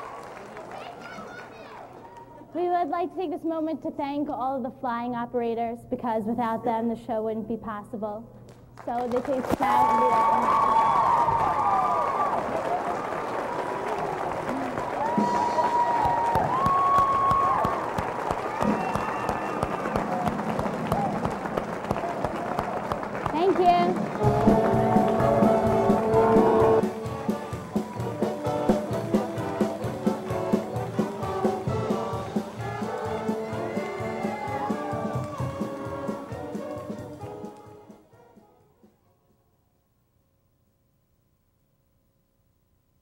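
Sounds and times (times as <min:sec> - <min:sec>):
audience applause and cheering: 0:00.0 - 0:02.5, 0:08.8 - 0:37.4
music: 0:14.5 - 0:39.9.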